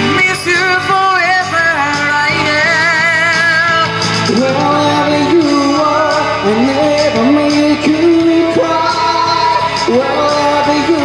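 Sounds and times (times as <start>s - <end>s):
instrumental accompaniment: 0.0s - 11.0s
man singing into microphone: 0.0s - 11.0s.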